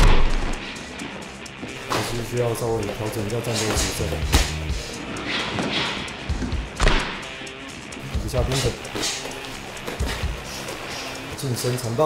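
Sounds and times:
background music: 0:00.0 - 0:12.0
boxing gloves thudding: 0:03.7 - 0:04.6.

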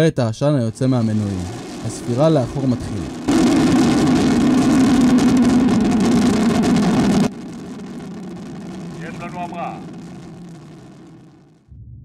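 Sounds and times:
rocket engines firing: 0:00.7 - 0:11.6
distant rumble: 0:00.7 - 0:11.9.

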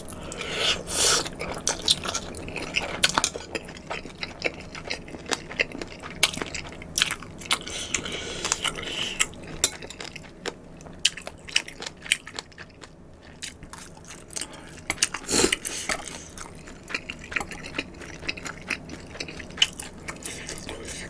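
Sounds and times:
wet chewing and mouth smacking: 0:01.2 - 0:20.9.

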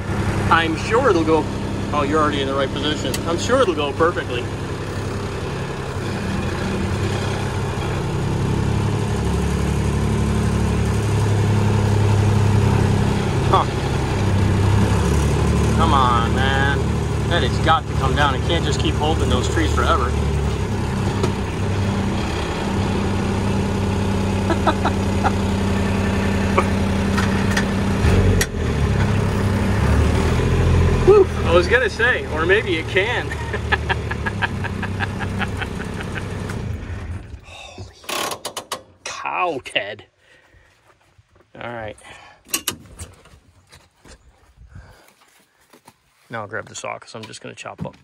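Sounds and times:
engine running steadily: 0:00.0 - 0:39.4.

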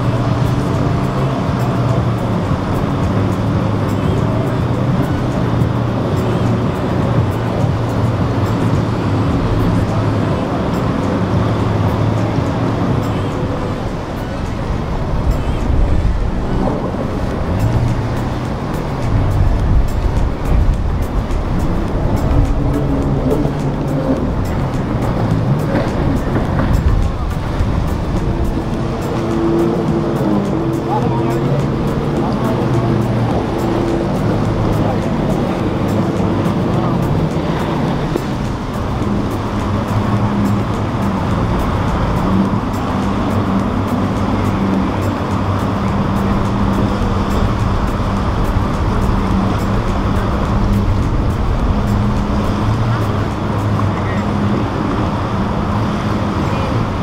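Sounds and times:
background music: 0:00.0 - 0:57.0
outboard motors droning: 0:00.0 - 0:57.0
voices: 0:00.0 - 0:57.0.

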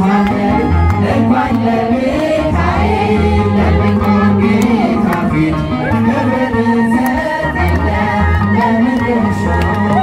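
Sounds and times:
man singing a hymn over loudspeaker: 0:00.0 - 0:10.0
voices singing along: 0:00.0 - 0:10.0
steady low notes: 0:00.4 - 0:08.4.

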